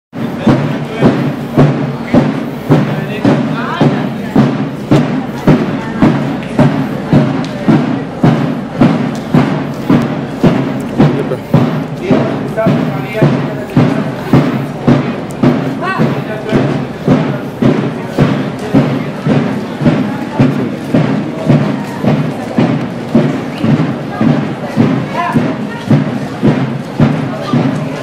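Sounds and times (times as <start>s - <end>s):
bass drum beats: 0.1s - 28.0s.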